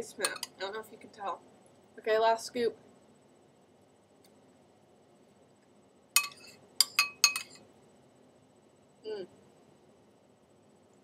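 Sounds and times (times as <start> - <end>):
spoon clinking against dish: 0.2 - 0.6, 6.2 - 7.6.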